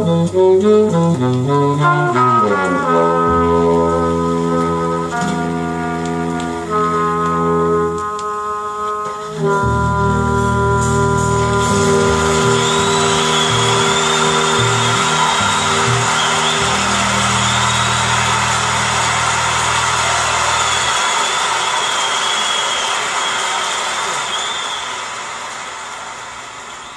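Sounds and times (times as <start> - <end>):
jazz final chord and bass: 0.0 - 20.8
audience applause: 11.4 - 26.9.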